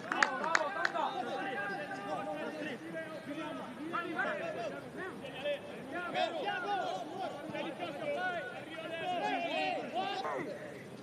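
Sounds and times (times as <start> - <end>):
voices shouting and talking: 0.0 - 11.0.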